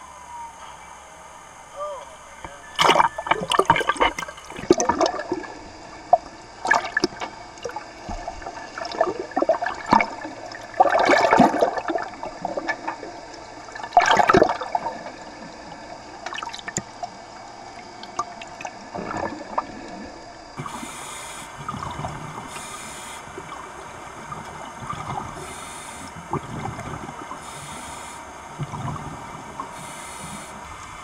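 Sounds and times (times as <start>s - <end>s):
water bubbling and sloshing: 2.7s - 31.0s.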